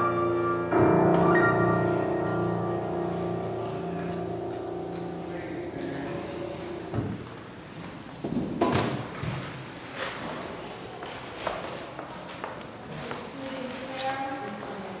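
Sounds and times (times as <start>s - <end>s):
piano note: 0.0s - 7.5s
people talking quietly: 0.7s - 7.5s, 8.8s - 15.0s.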